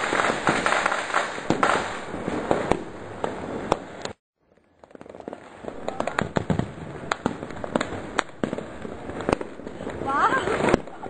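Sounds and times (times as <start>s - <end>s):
firecracker bangs: 0.0s - 4.0s, 4.8s - 11.0s
fireworks crackling: 0.0s - 11.0s.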